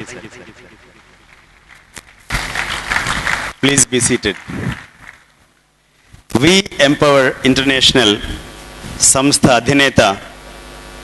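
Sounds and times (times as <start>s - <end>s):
audience applause: 0.6s - 3.6s.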